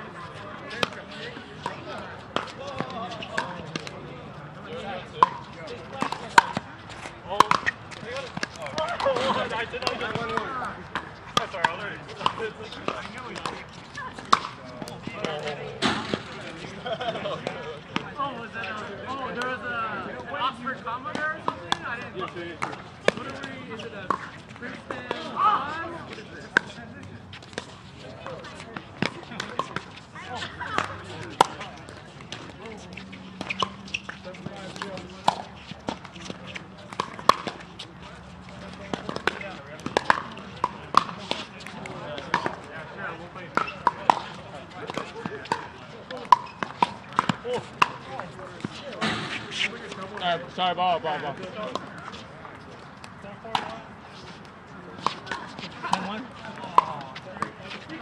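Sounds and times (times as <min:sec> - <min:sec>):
players talking: 0:00.0 - 0:58.0.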